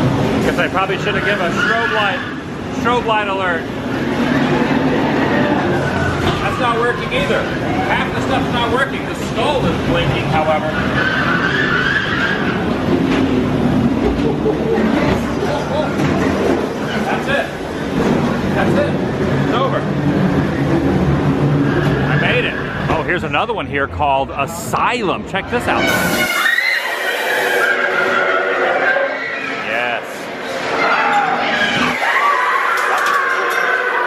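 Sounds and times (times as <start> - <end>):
ride car rumbling on track: 0.0 - 34.0
wavering high-pitched wail: 25.9 - 29.6.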